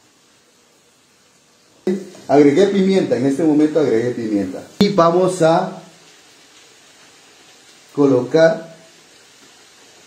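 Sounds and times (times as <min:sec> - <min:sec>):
onion sizzling in frying pan: 0:00.0 - 0:10.0
person speaking: 0:01.9 - 0:06.0.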